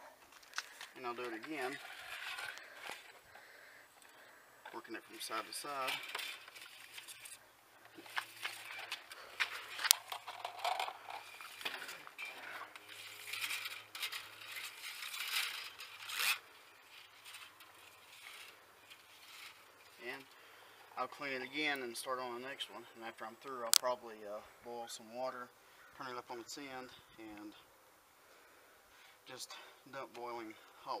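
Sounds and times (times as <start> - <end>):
drain snake cable scraping in tube: 1.1 - 3.2, 5.2 - 20.3.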